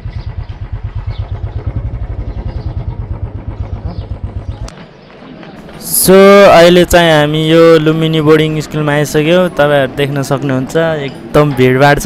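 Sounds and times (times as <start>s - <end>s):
motorcycle engine running slowly: 0.0s - 8.2s.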